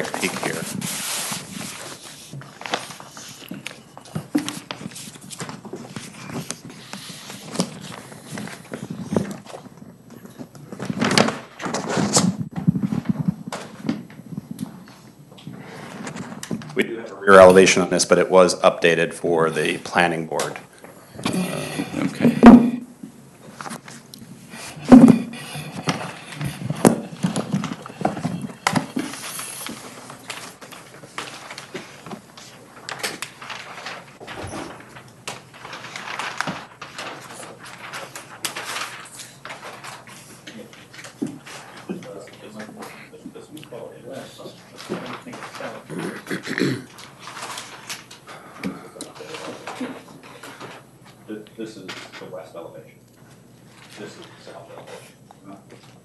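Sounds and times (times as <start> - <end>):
paper sheets rustling: 0.0 - 16.8, 23.4 - 52.6, 53.3 - 56.0.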